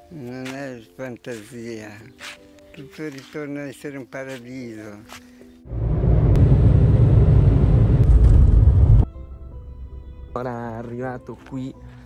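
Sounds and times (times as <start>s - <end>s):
loud low rumble: 5.7s - 9.1s.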